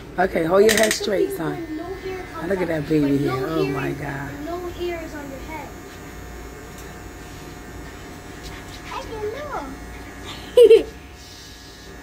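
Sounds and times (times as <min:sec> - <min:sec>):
electric hair trimmer buzzing: 0:00.2 - 0:12.0.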